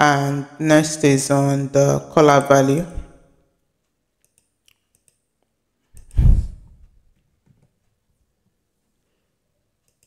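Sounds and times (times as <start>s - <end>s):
computer mouse clicks: 4.2s - 7.8s, 9.8s - 10.0s.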